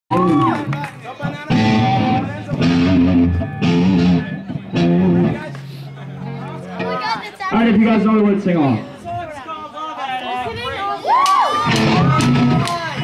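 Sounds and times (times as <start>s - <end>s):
electric guitar strumming chords: 1.2s - 7.3s, 11.7s - 13.0s.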